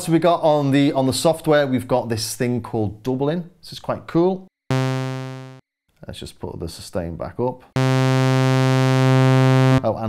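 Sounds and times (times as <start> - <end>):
synthesizer low sustained note: 4.7 - 5.6, 7.8 - 9.9.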